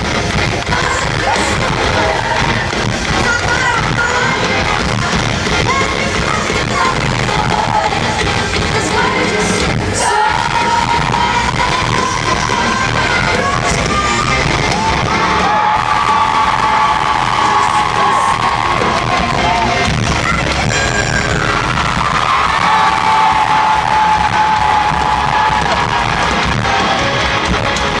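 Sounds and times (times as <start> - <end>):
crowd yelling and cheering: 0.0 - 28.0
live rock band: 0.0 - 28.0.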